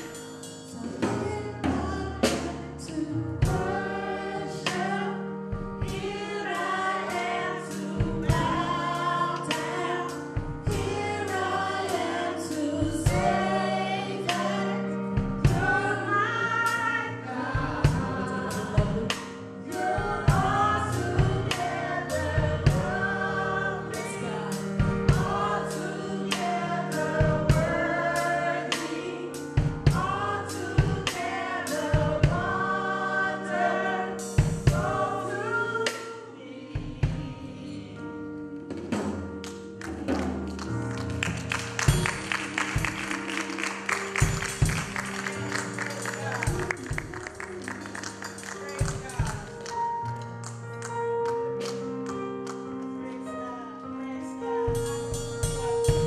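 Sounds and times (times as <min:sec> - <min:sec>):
instrumental accompaniment: 0:00.0 - 0:56.0
woman singing gospel song: 0:00.8 - 0:05.2, 0:05.8 - 0:38.4.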